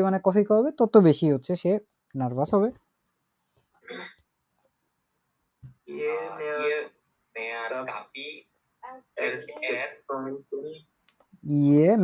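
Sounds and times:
person speaking: 0:00.0 - 0:02.9, 0:03.9 - 0:04.2, 0:05.7 - 0:12.0.

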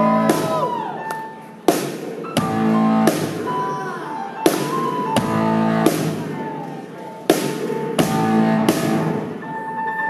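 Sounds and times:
drum and cymbal hit: 0:00.0 - 0:00.8, 0:01.7 - 0:03.7, 0:07.3 - 0:09.4
sustained keyboard chords: 0:00.0 - 0:10.0.

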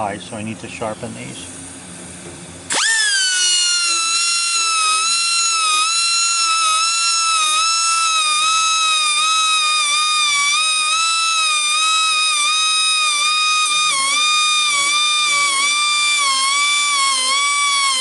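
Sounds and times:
rotary grinder whining: 0:02.7 - 0:18.0.

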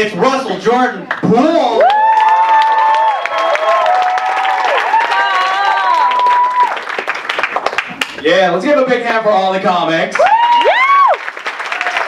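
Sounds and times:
whooping cheers: 0:01.7 - 0:06.9, 0:10.2 - 0:12.0
audience applauding: 0:01.8 - 0:08.3, 0:10.2 - 0:12.0.

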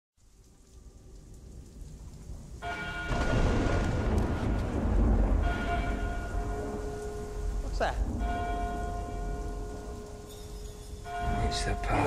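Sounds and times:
heavy rain: 0:00.2 - 0:12.0
low thunder rumble: 0:01.3 - 0:10.1
steady ringing tones: 0:05.3 - 0:12.0.

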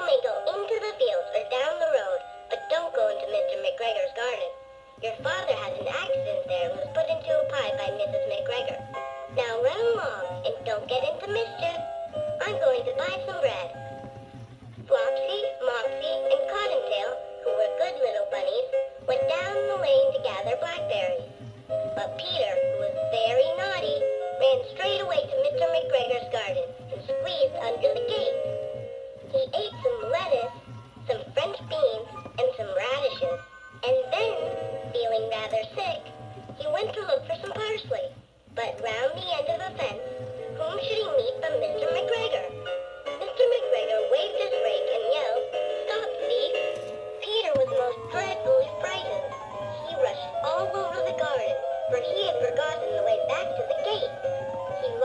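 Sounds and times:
toy recorded voice reading aloud: 0:00.0 - 0:14.0, 0:14.8 - 0:55.0
steady backing music: 0:00.0 - 0:55.0.

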